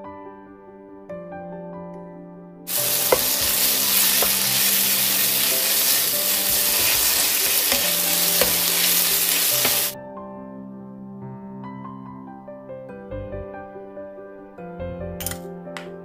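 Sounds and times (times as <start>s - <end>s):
meat sizzling in frying pan: 2.7s - 10.0s
spatula knocking pan: 2.7s - 10.0s.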